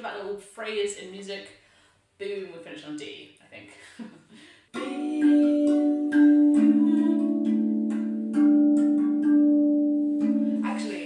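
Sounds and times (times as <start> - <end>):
steel tongue drum notes ringing: 4.8 - 11.0.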